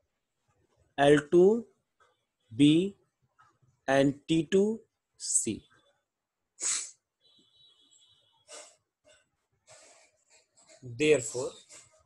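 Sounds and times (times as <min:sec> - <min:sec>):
person sniffing: 0:06.6 - 0:07.0, 0:08.5 - 0:08.9.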